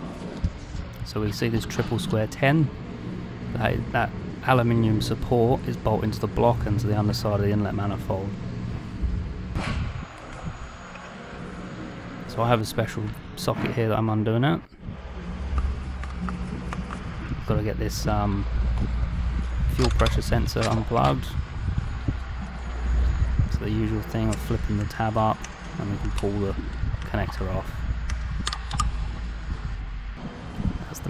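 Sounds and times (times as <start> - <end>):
steady low rumble: 0.0 - 31.0
connector knocks and clicks: 18.7 - 21.2, 28.0 - 29.0
socket wrench metallic clicks: 28.0 - 29.0.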